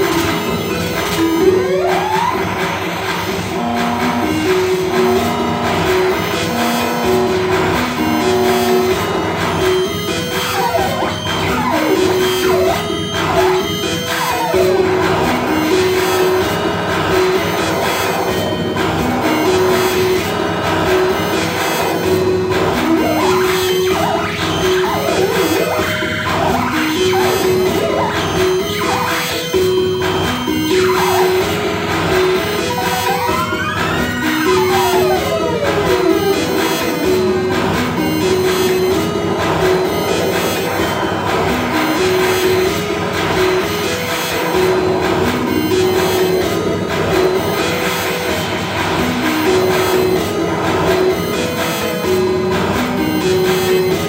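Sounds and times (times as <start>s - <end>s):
electronic noise music: 0.0s - 54.0s
pulsing two-pitch tone: 17.1s - 42.7s
rising and falling pitch sweeps: 21.3s - 39.2s.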